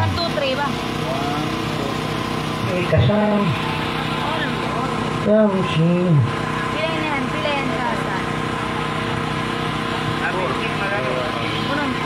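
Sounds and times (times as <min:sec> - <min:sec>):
steady droning hum: 0:00.0 - 0:12.0.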